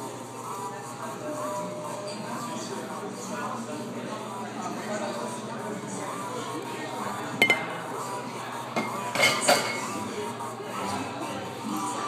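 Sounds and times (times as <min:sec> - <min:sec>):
metal spoon clinking glass: 0:07.4 - 0:07.7.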